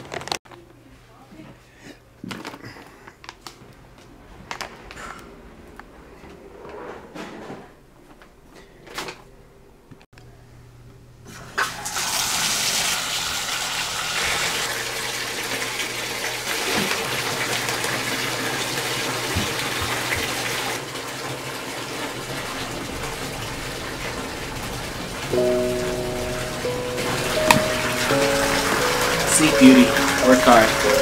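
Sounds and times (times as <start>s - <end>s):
water gushing into bathtub: 11.6s - 31.0s
background music: 25.3s - 31.0s.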